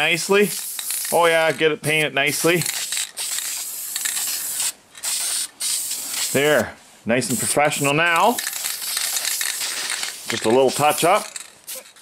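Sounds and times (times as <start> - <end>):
aerosol spray can hissing: 0.5 - 1.3, 2.6 - 6.4, 8.3 - 12.0.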